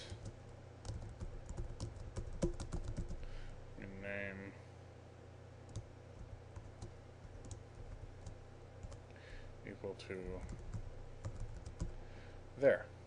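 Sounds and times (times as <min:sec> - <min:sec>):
low steady hum: 0:00.0 - 0:13.0
computer keyboard typing: 0:00.2 - 0:03.2, 0:05.7 - 0:09.0, 0:10.2 - 0:12.0.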